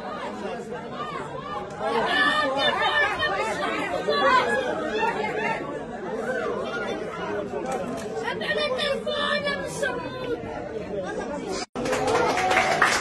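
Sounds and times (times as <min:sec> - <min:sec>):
crowd chatter: 0:00.0 - 0:13.0.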